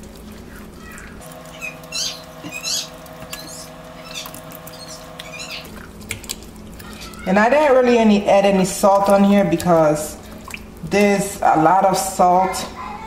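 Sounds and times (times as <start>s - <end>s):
hand squelching raw meat: 0.0s - 11.3s
steady hum: 0.0s - 13.0s.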